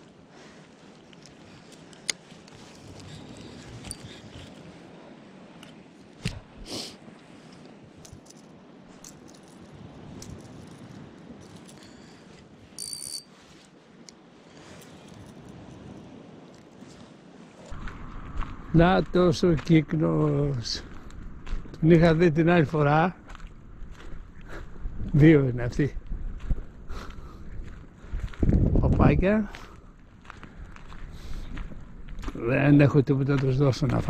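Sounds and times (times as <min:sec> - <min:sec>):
fishing rod handling rustle: 0:00.0 - 0:17.7.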